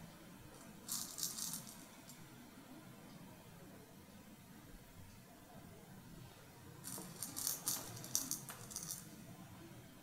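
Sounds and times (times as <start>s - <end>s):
jingly rattle shaking: 0.9s - 1.8s, 6.9s - 9.1s.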